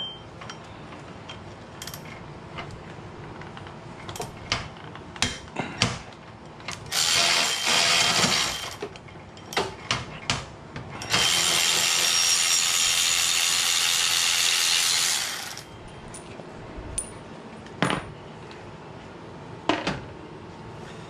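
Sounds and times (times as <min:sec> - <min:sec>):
electric ratchet spinning bolts: 0:06.9 - 0:08.8, 0:11.0 - 0:15.7.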